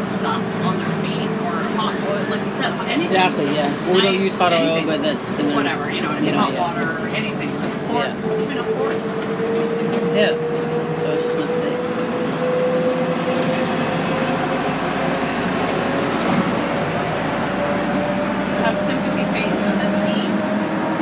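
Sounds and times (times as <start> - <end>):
bus engine and road noise: 0.0 - 21.0.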